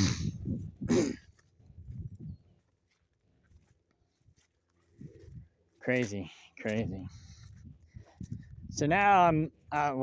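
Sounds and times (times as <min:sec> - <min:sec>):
footsteps on dry grass: 0:00.3 - 0:09.7.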